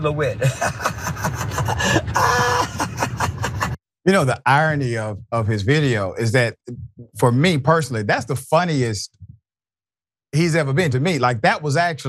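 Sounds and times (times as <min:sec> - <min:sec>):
man laughing hard: 0:00.4 - 0:03.8.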